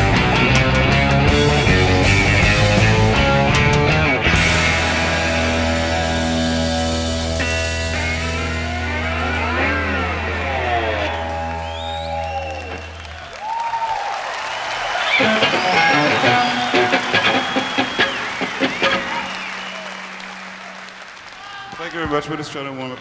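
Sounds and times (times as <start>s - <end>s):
electric guitar bends and slides: 0.0s - 13.1s, 15.1s - 20.9s
audience applause and cheering: 0.0s - 23.0s
audience whistling: 7.4s - 22.0s.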